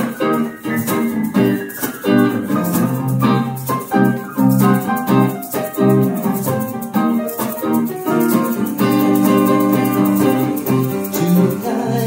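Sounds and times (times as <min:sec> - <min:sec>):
electric guitar chords: 0:00.0 - 0:12.0
piano chords: 0:00.0 - 0:12.0.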